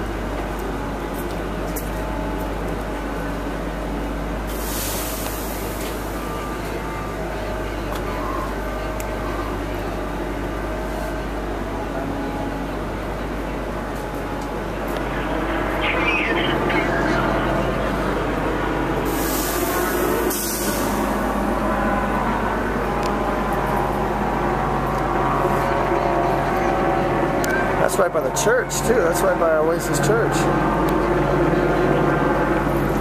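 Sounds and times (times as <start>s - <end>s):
road traffic rumble: 0.0s - 33.0s
loud hiss: 4.5s - 6.2s, 19.0s - 21.1s.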